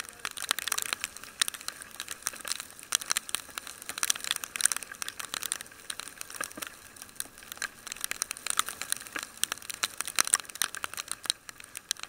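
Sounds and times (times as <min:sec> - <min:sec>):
raindrops ticking on microphone: 0:00.0 - 0:12.0.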